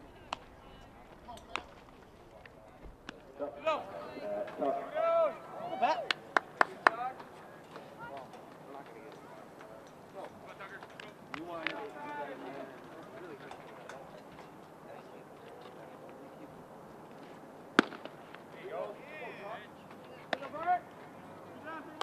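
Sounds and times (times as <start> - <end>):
baseball popping into leather mitt: 17.8 - 18.2.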